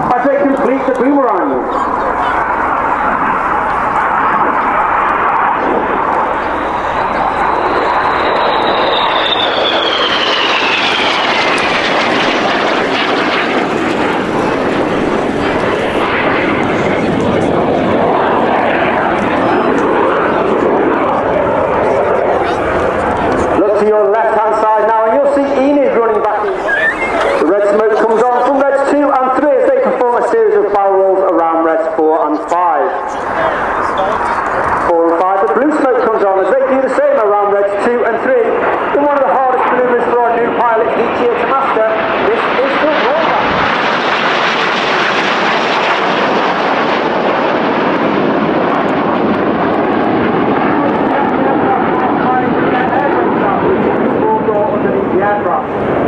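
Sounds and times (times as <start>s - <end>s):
commentator over loudspeaker: 0.0s - 2.6s, 16.9s - 43.8s, 50.4s - 55.8s
jet roaring past: 0.0s - 56.0s.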